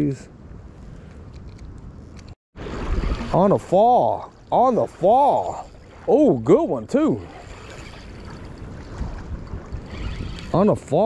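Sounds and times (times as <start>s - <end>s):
wind buffeting microphone: 4.4s - 11.0s.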